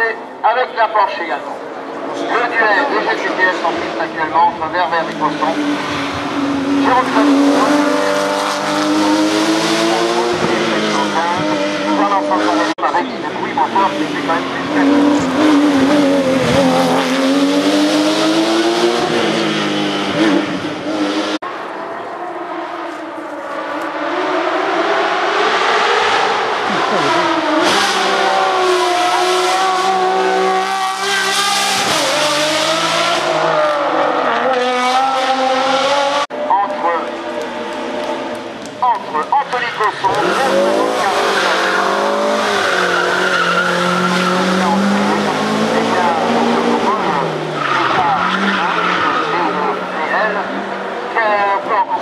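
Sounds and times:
racing car engines revving: 0.0 - 52.0.

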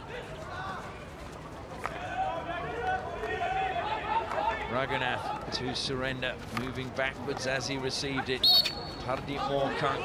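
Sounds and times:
men talking indistinctly: 4.4 - 10.0.

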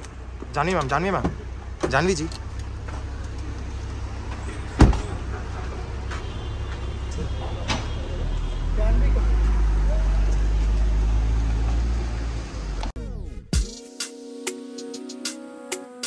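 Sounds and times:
car engine running: 0.0 - 7.6
car door slamming: 4.6 - 5.5.

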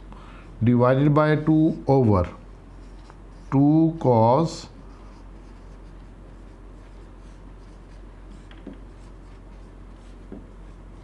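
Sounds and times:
low electrical hum: 0.0 - 11.0
marker pen writing on whiteboard: 2.2 - 4.1, 4.7 - 11.0.

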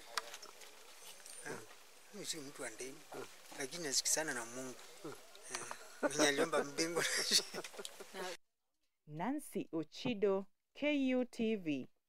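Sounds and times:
man murmuring: 5.0 - 8.4.

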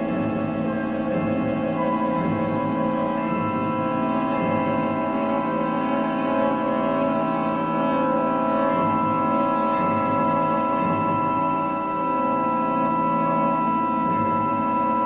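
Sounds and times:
orchestra sustained chord: 0.0 - 15.0.

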